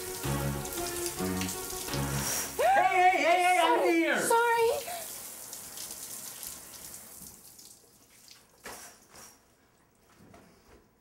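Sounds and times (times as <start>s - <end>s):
shower water spraying: 0.0s - 9.4s.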